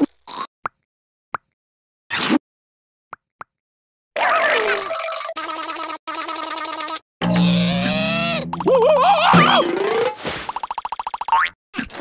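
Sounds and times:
cartoon falling pitch sound: 0:07.2 - 0:10.2.

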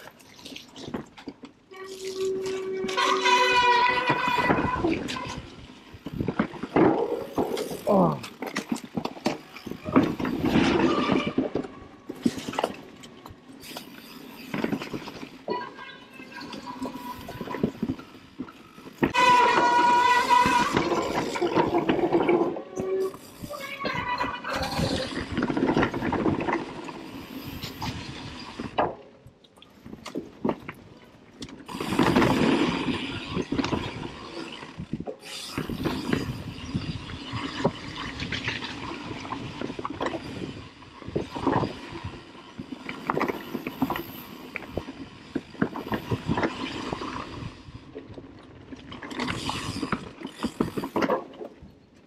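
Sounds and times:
bike rolling on dirt trail: 0:00.0 - 0:52.0.

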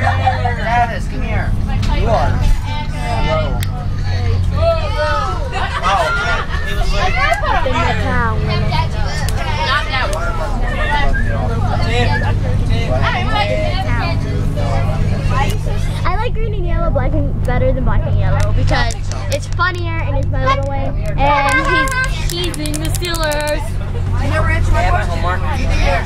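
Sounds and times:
bus engine drone: 0:00.0 - 0:26.0
passengers chattering: 0:00.0 - 0:26.0.

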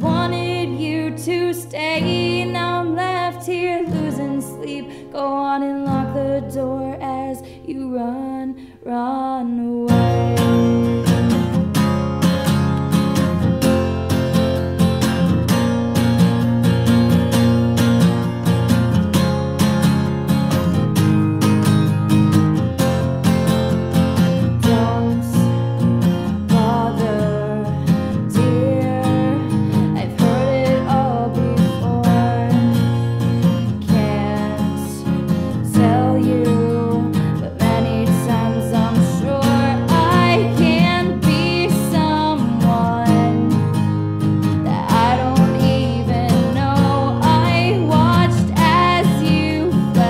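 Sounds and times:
song with strummed acoustic guitar: 0:00.0 - 0:50.0.

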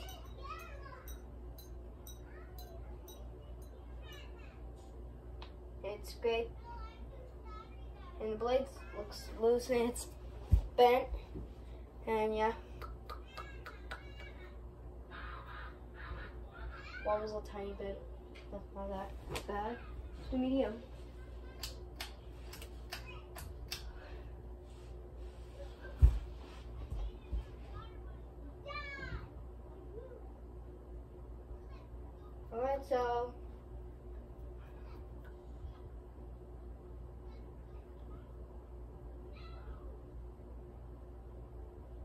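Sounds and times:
ceiling fan humming: 0:00.0 - 0:42.0.

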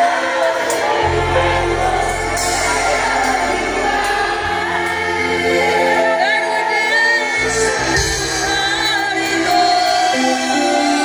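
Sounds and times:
crowd singing along: 0:00.0 - 0:11.0
live concert music: 0:00.0 - 0:11.0.

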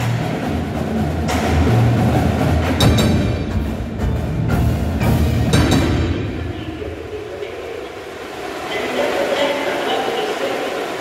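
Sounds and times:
reverberant percussion tail: 0:00.0 - 0:11.0.

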